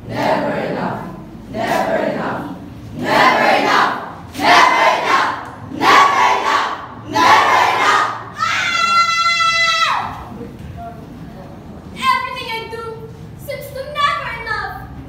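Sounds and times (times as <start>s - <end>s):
group chanting shouted bursts: 0.1s - 8.6s
long high cry: 8.3s - 10.1s.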